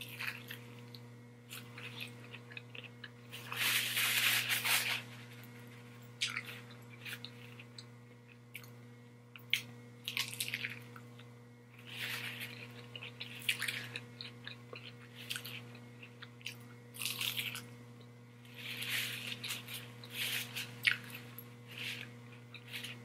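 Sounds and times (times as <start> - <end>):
crisp crunching: 1.5 - 7.8, 11.8 - 17.7, 18.5 - 23.0
wet chewing: 18.6 - 21.2.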